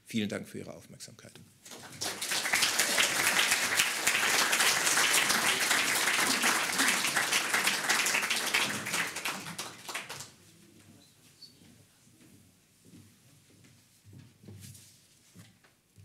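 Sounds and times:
audience applauding: 1.7 - 10.4.

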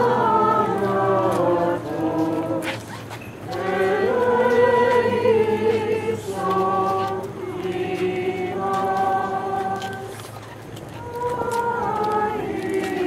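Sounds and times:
group chanting: 0.0 - 2.7, 3.6 - 10.0.

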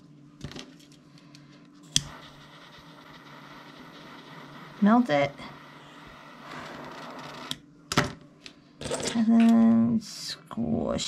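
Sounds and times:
torch lighter flame hissing: 1.9 - 7.6.

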